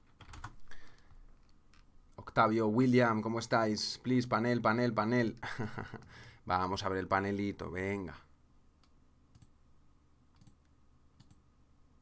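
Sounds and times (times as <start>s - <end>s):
computer clicks: 8.8s - 9.6s, 10.3s - 11.4s.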